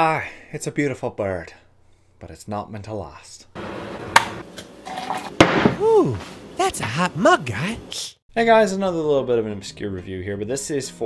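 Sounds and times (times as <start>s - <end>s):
man saying ooh: 5.8s - 8.2s.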